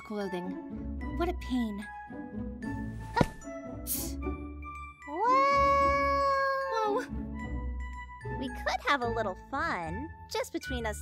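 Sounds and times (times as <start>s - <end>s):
light background music: 0.0s - 11.0s
woman's high-pitched cry: 5.1s - 7.1s.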